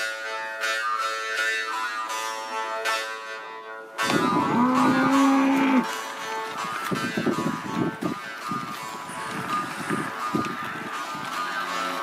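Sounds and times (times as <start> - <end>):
cow mooing: 4.1 - 5.9.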